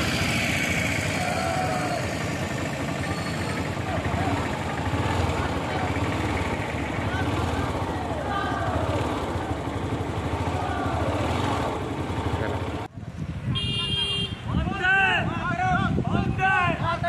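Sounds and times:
distant motorcycles rumbling: 0:00.0 - 0:13.6
people shouting: 0:00.9 - 0:06.0, 0:07.0 - 0:11.8.

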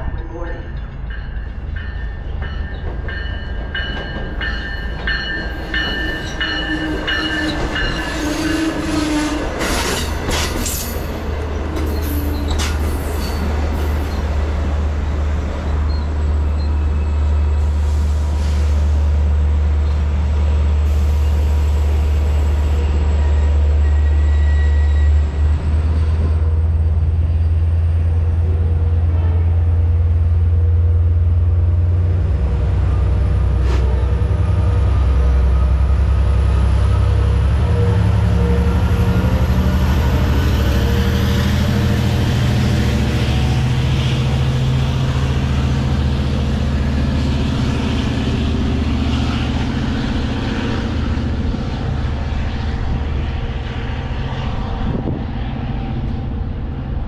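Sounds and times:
train rumble: 0:00.0 - 0:57.0
train horn: 0:06.0 - 0:10.0, 0:29.0 - 0:29.8.

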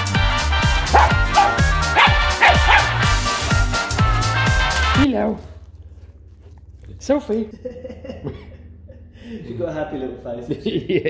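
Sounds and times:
small dog barking: 0:00.9 - 0:03.0.

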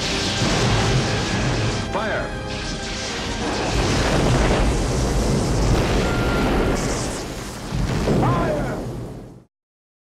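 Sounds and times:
loud rumbling explosion: 0:00.0 - 0:02.1, 0:03.3 - 0:09.5.

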